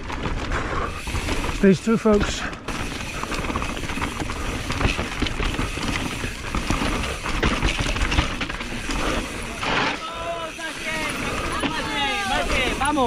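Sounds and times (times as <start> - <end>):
bike knocking and rattling: 0.0 - 13.0
bike tyres on dirt and stones: 0.0 - 13.0.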